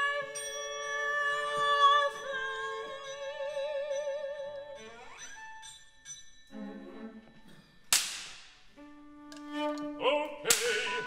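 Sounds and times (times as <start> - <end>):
sharp percussion crack: 7.9 - 8.6.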